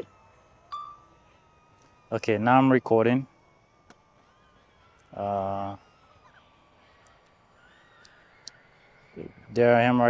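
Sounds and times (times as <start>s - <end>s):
faint thin whine: 0.0s - 10.0s.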